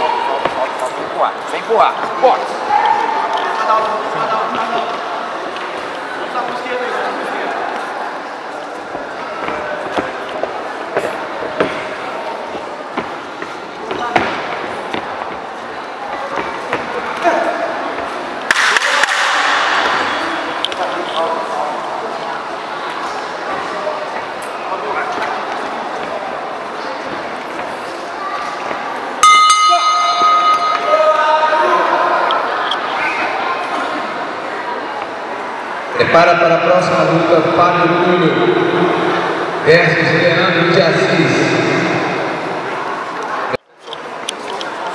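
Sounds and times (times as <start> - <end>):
crowd chatter and shouts: 0.0 - 44.9
boxing ring bell ringing: 29.2 - 31.1.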